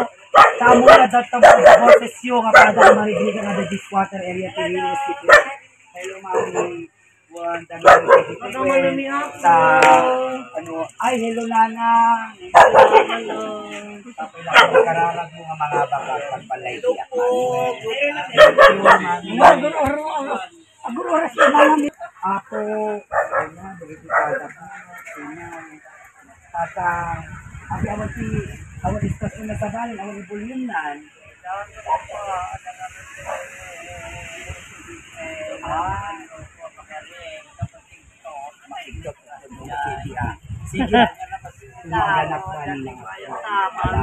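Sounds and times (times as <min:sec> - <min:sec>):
dog barking: 0:00.0 - 0:03.6, 0:05.2 - 0:05.6, 0:06.2 - 0:06.9, 0:07.8 - 0:08.5, 0:12.5 - 0:13.4, 0:14.5 - 0:15.0, 0:15.6 - 0:16.3, 0:18.3 - 0:19.7, 0:21.3 - 0:21.9, 0:23.1 - 0:24.5
people talking: 0:00.0 - 0:44.0
people's voices: 0:00.0 - 0:44.0.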